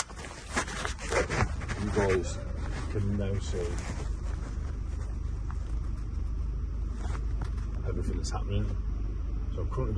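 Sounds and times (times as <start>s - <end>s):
rustles and scrapes against clothing: 0.0s - 8.8s.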